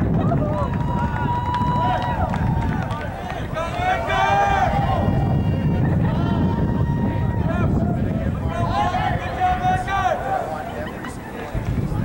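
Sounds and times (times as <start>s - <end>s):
wind rumble on microphone: 0.0s - 12.0s
distant voices shouting: 0.1s - 12.0s.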